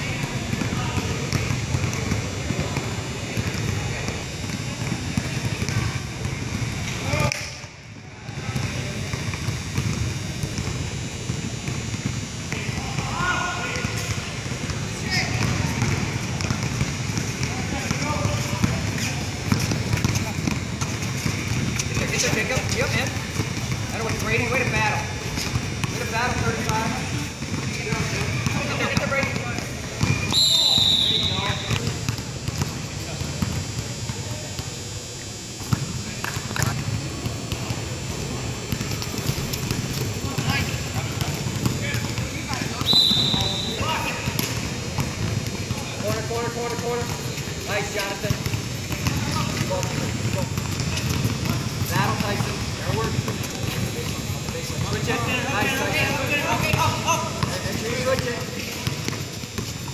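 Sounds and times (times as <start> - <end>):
basketball bouncing on court: 0.0 - 7.6, 8.3 - 59.9
referee's whistle: 30.1 - 31.8, 42.8 - 43.9.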